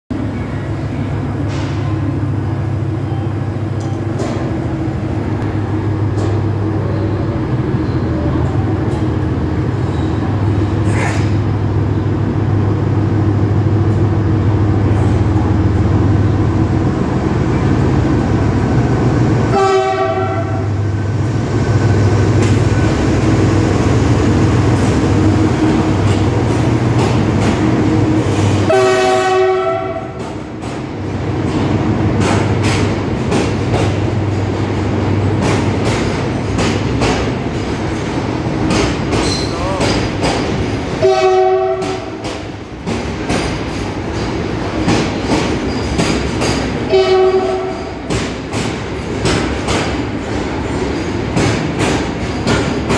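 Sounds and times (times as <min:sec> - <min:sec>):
locomotive engine hum: 0:00.1 - 0:52.9
locomotive horn blasts: 0:19.5 - 0:20.8, 0:28.6 - 0:30.2, 0:41.0 - 0:42.2, 0:46.9 - 0:48.0
train wheels clicking over rail joints: 0:21.3 - 0:29.5, 0:30.1 - 0:52.9.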